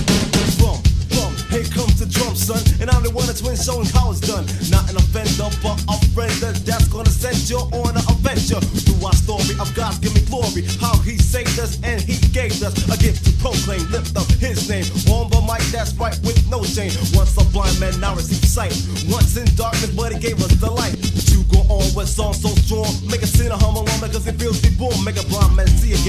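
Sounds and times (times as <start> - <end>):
heavy bass: 0.0 - 26.0
rapping over a beat: 0.0 - 26.0.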